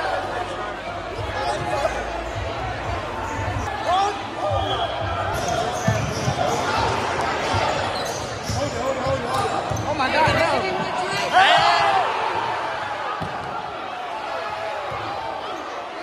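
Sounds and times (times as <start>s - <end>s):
crowd chatter echoing: 0.0s - 16.0s.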